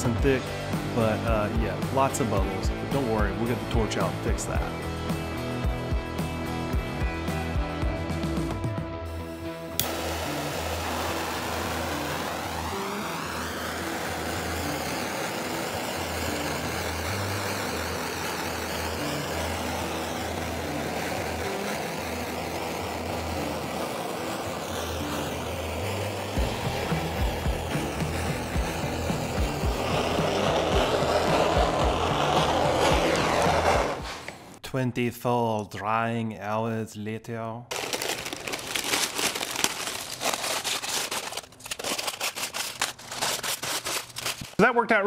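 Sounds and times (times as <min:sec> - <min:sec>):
background music with bass line: 0:00.0 - 0:09.8, 0:26.4 - 0:34.0
gas torch flame hissing: 0:09.1 - 0:34.6.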